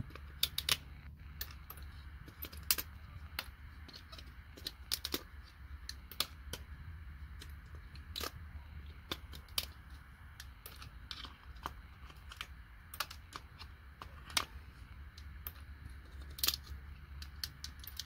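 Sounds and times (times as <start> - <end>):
low steady rumble: 0.0 - 18.0.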